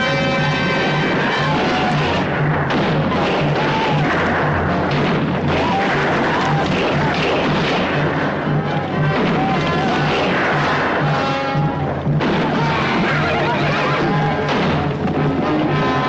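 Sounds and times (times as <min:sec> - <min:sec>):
dramatic orchestral music: 0:00.0 - 0:16.0
gunfire booms: 0:00.0 - 0:16.0.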